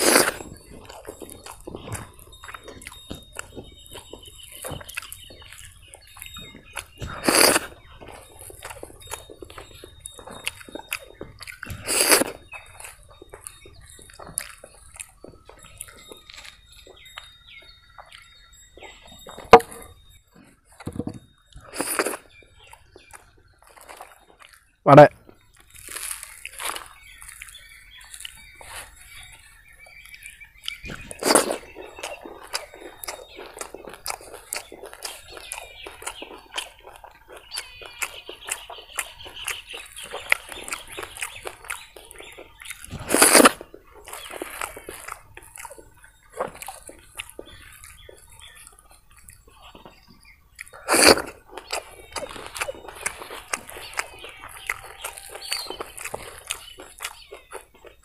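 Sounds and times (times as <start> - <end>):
birds chirping: 0.0 - 58.0
man chewing food: 0.0 - 58.0
loud bites: 50.8 - 51.8.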